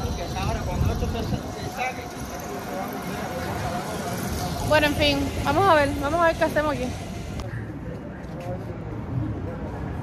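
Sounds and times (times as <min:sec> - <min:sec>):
three-wheeler engine passing: 0:00.0 - 0:07.8
faint voices: 0:00.0 - 0:10.0
motorcycle passing: 0:01.1 - 0:07.4.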